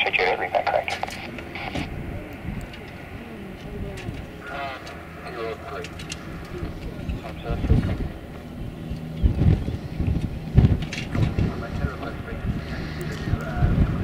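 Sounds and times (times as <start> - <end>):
faint radio voice: 0.0 - 8.0, 11.2 - 14.0
jet airliner hum: 0.0 - 14.0
wind gusting on microphone: 0.0 - 14.0.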